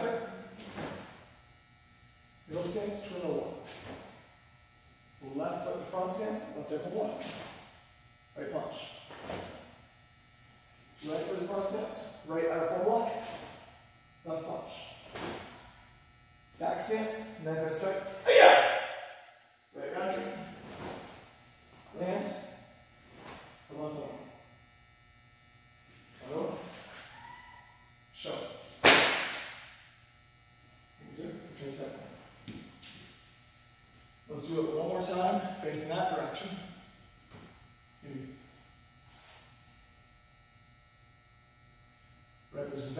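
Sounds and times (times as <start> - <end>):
faint steady tones: 0.0 - 28.8, 29.6 - 42.9
man calling out: 16.6 - 18.9.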